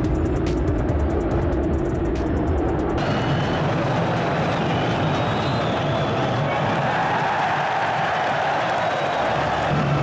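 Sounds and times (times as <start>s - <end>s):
stadium crowd voices: 3.0s - 10.0s.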